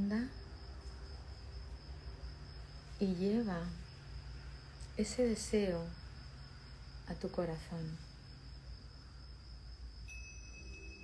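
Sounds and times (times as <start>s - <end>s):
cricket trill: 0.0s - 11.0s
low background hum: 0.0s - 11.0s.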